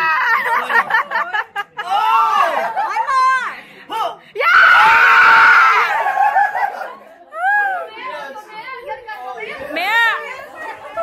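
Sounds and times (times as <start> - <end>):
people screaming: 4.4 - 7.9.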